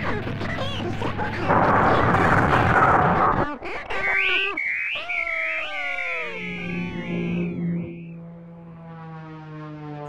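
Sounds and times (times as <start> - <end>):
electronic swooping tones: 4.0 - 8.9.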